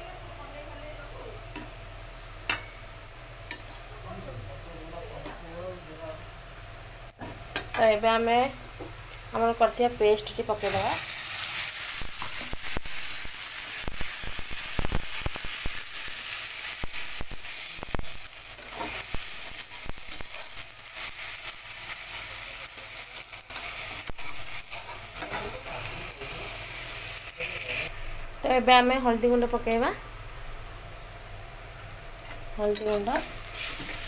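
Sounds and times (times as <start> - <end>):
paste sizzling in hot oil: 10.2 - 27.9, 32.8 - 34.0
metal spatula scraping a pan: 18.6 - 20.6, 32.3 - 34.0.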